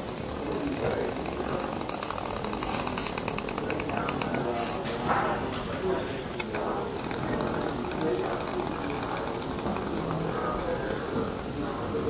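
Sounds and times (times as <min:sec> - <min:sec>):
rapid mechanical rattle: 0:00.0 - 0:04.9, 0:06.4 - 0:10.5
steady background noise: 0:00.0 - 0:12.0.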